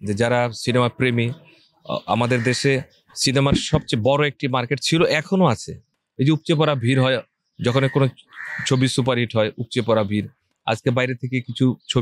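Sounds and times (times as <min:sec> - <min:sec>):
man speaking into microphones: 0:00.0 - 0:12.0.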